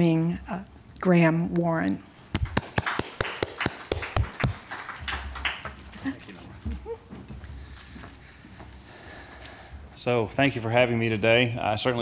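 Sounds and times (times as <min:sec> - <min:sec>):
people clapping: 0:02.3 - 0:06.4.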